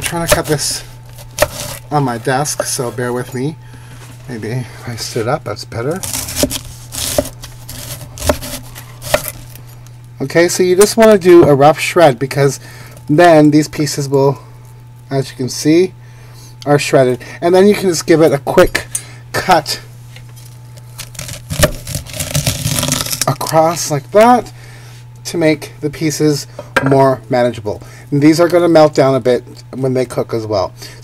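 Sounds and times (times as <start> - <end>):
knife crunching through cabbage: 0.0 - 2.1, 6.0 - 9.6, 20.9 - 23.6
knife slicing through cabbage: 1.2 - 1.9, 6.0 - 9.4.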